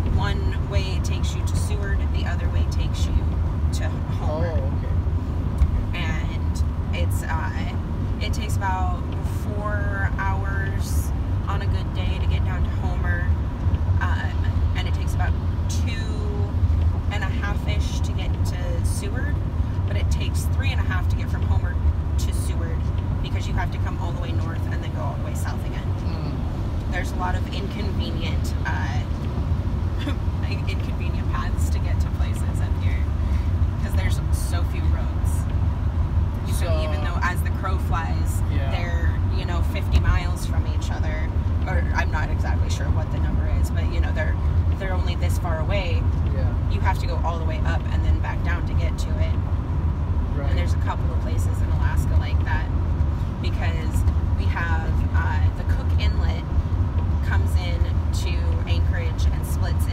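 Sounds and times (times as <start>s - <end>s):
road and engine rumble in cab: 0.0s - 59.9s
faint talking: 26.0s - 26.4s, 38.5s - 38.9s, 46.3s - 46.6s.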